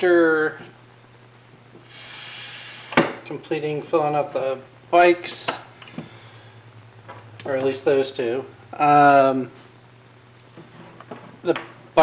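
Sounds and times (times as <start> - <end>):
low steady hum: 0.0 - 12.0
breath intake hiss: 1.8 - 3.2.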